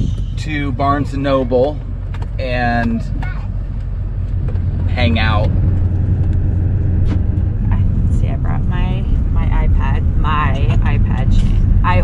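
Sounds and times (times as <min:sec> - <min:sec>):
vehicle road and engine rumble: 0:00.0 - 0:12.0.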